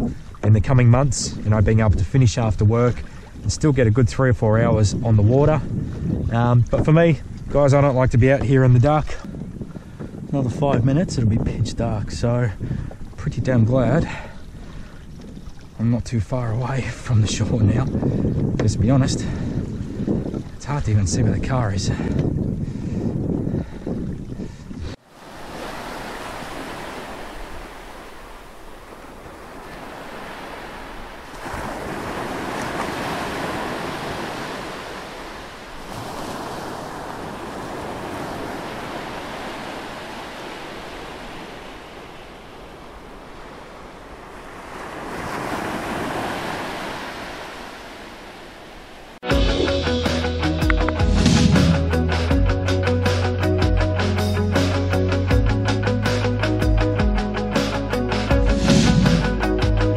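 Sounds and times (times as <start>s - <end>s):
wind rumbling on microphone: 0.0s - 49.2s, 58.4s - 59.9s
ocean waves washing: 19.0s - 59.9s
music: 49.2s - 59.9s.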